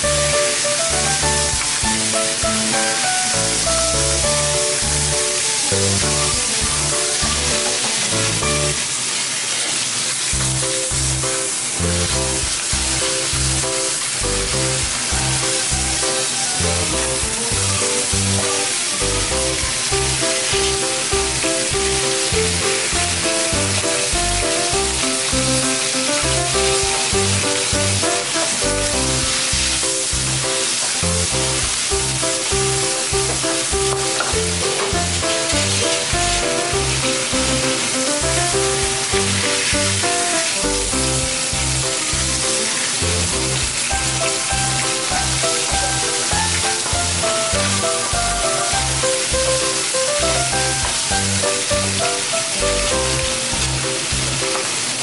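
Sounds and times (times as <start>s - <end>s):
background music with a beat: 0.0s - 8.8s, 12.1s - 30.7s, 31.3s - 54.8s
fish sizzling in hot oil: 0.0s - 55.0s.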